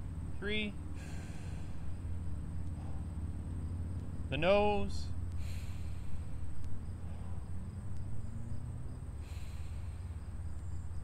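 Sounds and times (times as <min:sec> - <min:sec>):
low rumble: 0:00.0 - 0:11.0
man breathing deeply: 0:00.9 - 0:03.4, 0:05.2 - 0:08.3, 0:09.1 - 0:11.0.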